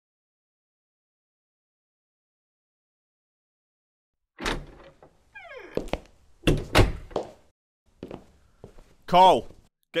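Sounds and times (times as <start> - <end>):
door thudding shut: 4.4 - 5.8, 6.4 - 7.2
door creaking: 4.4 - 7.3.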